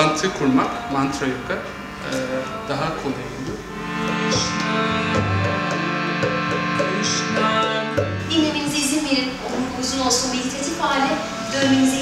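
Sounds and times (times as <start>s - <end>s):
harmonium chord: 0.0s - 12.0s.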